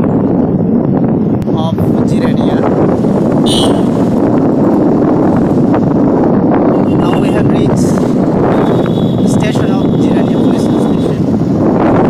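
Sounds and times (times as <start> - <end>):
road noise: 0.0 - 12.0
wind buffeting microphone: 0.0 - 12.0.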